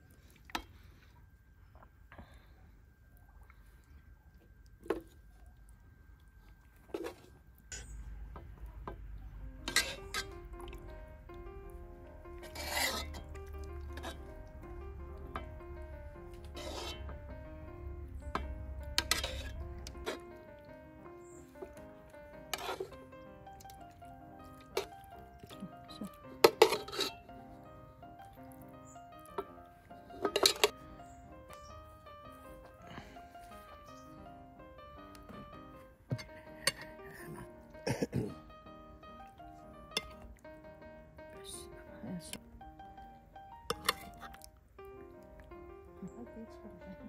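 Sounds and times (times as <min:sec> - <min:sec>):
soft melodic background music: 0:06.0 - 0:47.0
metal spoon clinking on dishes: 0:43.7 - 0:44.1.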